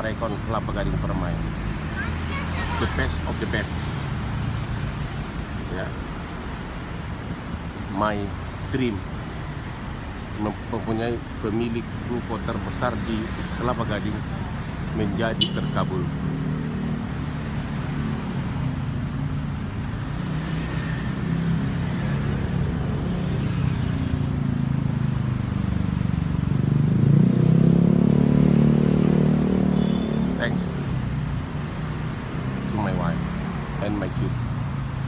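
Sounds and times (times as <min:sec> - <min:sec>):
street traffic: 0:00.0 - 0:35.0.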